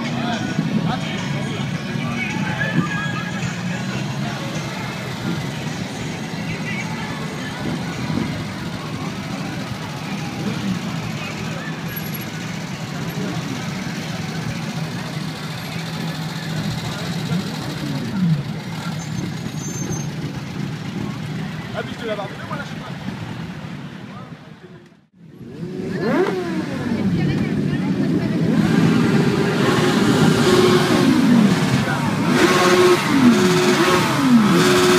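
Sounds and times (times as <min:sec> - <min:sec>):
crowd chatter: 0:00.0 - 0:34.9
engine revving: 0:25.2 - 0:34.9.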